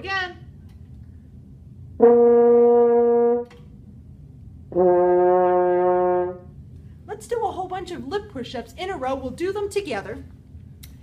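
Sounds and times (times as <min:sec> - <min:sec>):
french horn held notes: 0:02.0 - 0:03.6, 0:04.7 - 0:06.6.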